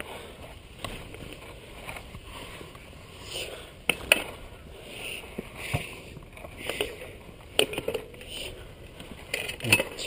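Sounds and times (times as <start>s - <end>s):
bike rattling: 0.0s - 10.0s
bike tyres on dirt trail: 0.0s - 10.0s.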